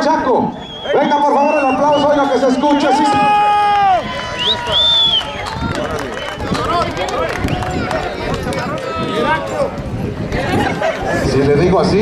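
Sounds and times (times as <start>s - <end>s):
crowd: 0.0s - 12.0s
shrill whistle: 0.5s - 3.1s, 4.3s - 5.5s.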